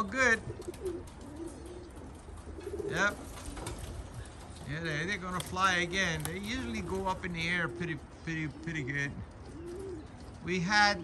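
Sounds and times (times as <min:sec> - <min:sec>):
pigeons cooing softly: 0:00.0 - 0:11.0.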